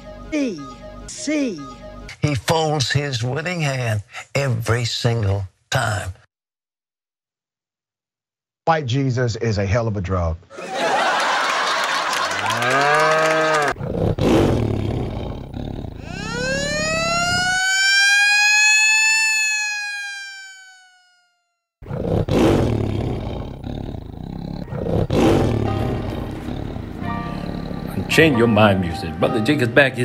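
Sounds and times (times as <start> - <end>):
long rising tone: 16.0 - 21.4.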